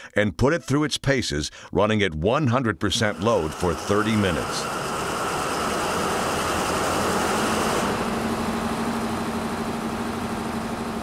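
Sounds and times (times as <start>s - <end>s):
generator engine running: 3.0s - 11.0s.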